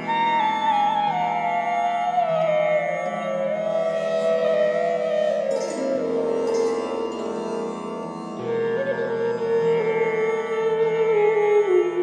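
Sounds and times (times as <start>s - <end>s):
flute holding long note: 0.0s - 12.0s.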